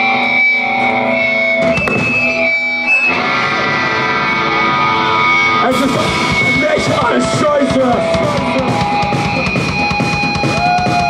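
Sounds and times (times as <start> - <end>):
electric guitar notes and chords: 0.0 - 11.0.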